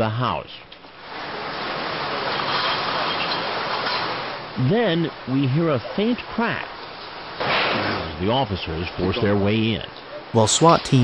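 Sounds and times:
rushing outdoor background noise: 0:00.5 - 0:11.0.

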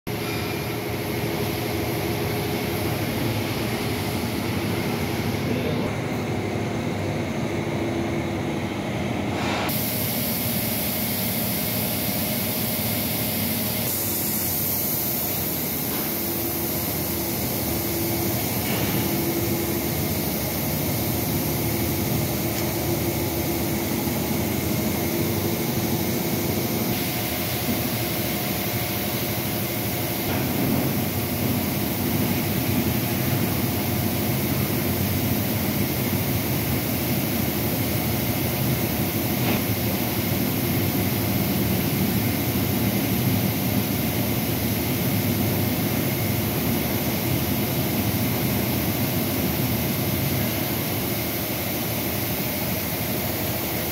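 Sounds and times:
industrial machinery drone: 0:00.1 - 0:53.9.

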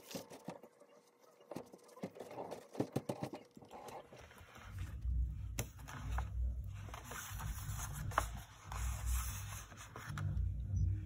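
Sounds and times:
paper being handled: 0:05.6 - 0:10.3.

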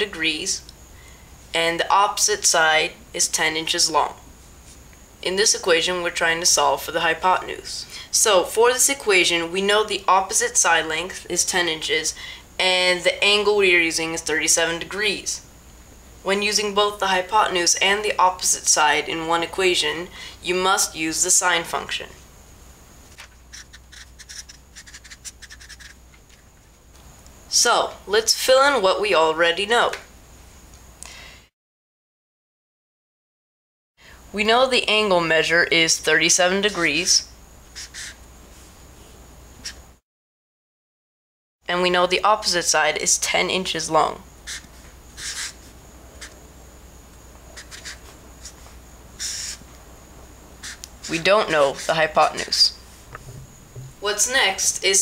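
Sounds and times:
marker pen scratching on paper: 0:23.1 - 0:26.4, 0:37.8 - 0:38.2, 0:44.4 - 0:46.4, 0:47.6 - 0:49.6, 0:50.6 - 0:52.6.

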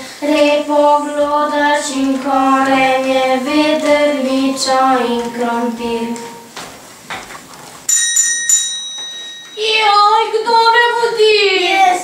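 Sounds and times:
small bell ringing: 0:07.9 - 0:10.4.

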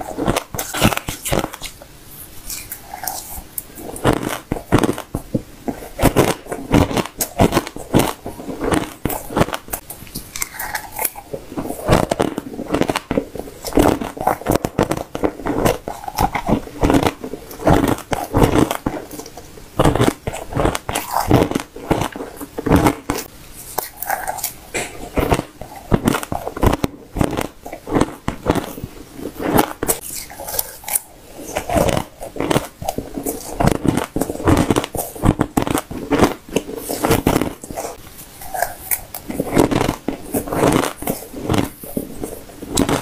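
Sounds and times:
crunching ice: 0:00.0 - 0:01.7, 0:02.5 - 0:43.0.

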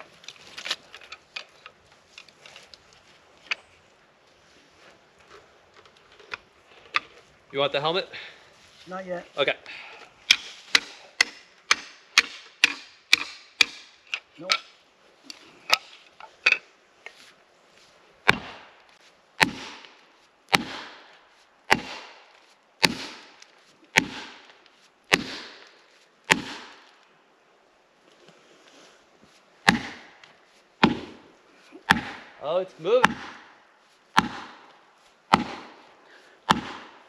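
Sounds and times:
axe striking plastic wedges: 0:18.3 - 0:18.6, 0:19.4 - 0:19.9, 0:21.7 - 0:22.2, 0:22.8 - 0:24.5, 0:25.1 - 0:25.7, 0:26.3 - 0:26.8, 0:29.7 - 0:30.2, 0:31.9 - 0:32.3, 0:33.0 - 0:33.5, 0:34.2 - 0:34.7, 0:35.3 - 0:35.8, 0:36.5 - 0:37.0.

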